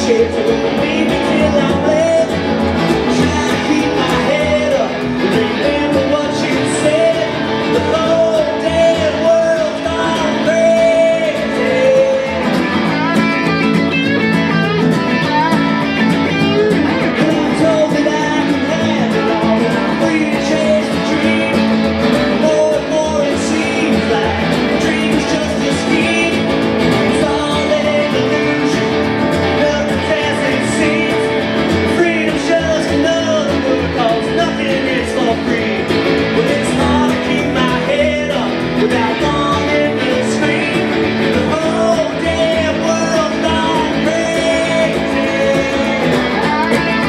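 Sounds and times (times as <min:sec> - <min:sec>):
double bass: 0:00.0 - 0:47.0
electric guitar: 0:00.0 - 0:47.0
man singing: 0:00.0 - 0:47.0
strummed acoustic guitar: 0:00.0 - 0:47.0.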